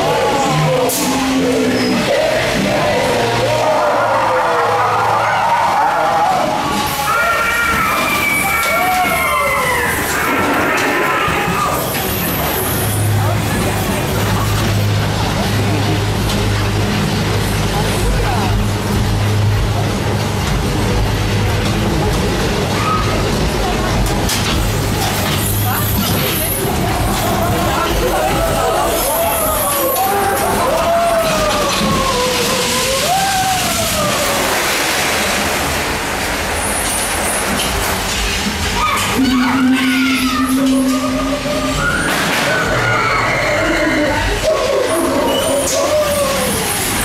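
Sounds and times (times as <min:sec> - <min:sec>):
roller coaster rolling on track: 0:00.0 - 0:47.0.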